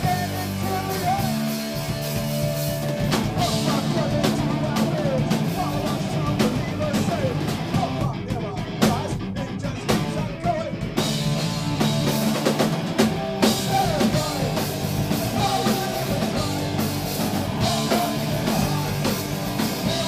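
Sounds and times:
punk rock band playing live: 0.0 - 20.0.

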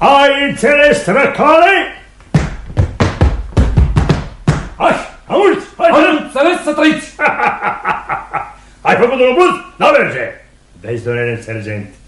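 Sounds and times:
dull deep thumps: 2.2 - 4.8.

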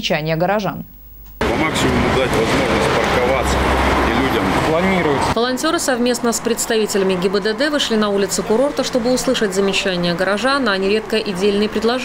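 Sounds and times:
people talking indistinctly: 0.0 - 12.0
road traffic: 1.4 - 12.0.

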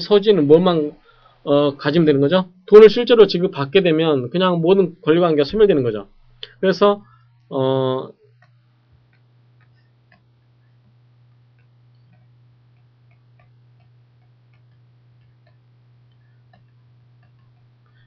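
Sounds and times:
steady low hum: 0.0 - 18.0
faint small ticks: 8.3 - 18.0.

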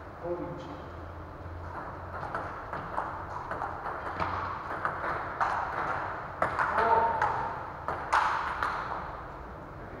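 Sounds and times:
table tennis ball hits: 1.7 - 9.2.

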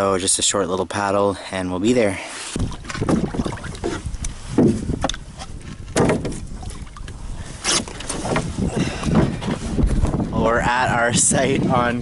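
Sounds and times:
water sloshing: 2.5 - 10.2
canoe hull knocking on rock: 2.6 - 5.2, 5.8 - 6.5
wind rumble on microphone: 2.6 - 12.0.

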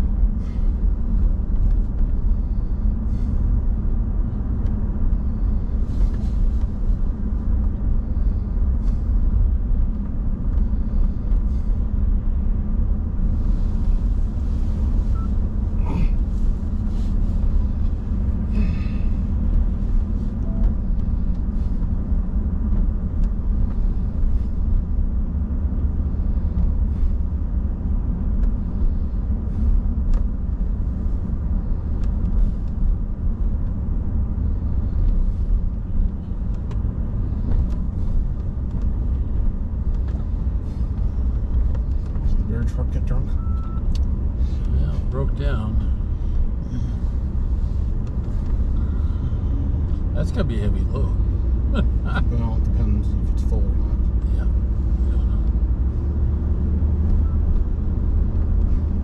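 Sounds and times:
engine and road rumble: 0.0 - 59.0.

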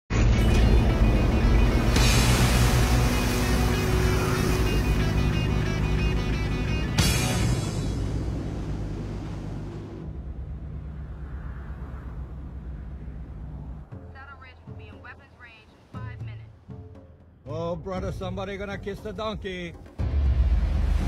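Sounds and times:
film soundtrack music: 0.1 - 21.0
sharp musical hit: 0.2 - 8.8
ship rushing through water: 0.4 - 13.9.

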